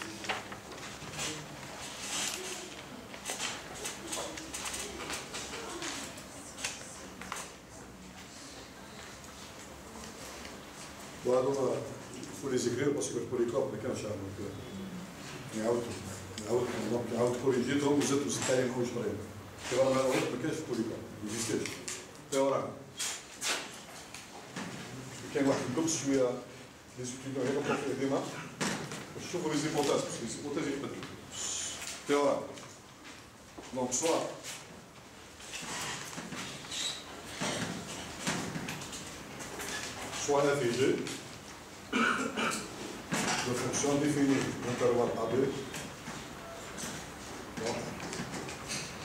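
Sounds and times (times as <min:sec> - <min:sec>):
paper rustling: 0:00.0 - 0:07.5
man speaking: 0:11.2 - 0:14.7, 0:15.5 - 0:22.8, 0:25.3 - 0:28.6, 0:43.4 - 0:45.8.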